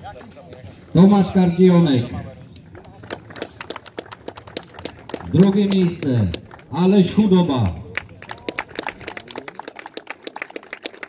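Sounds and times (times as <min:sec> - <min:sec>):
small group applauding: 0:02.6 - 0:11.0.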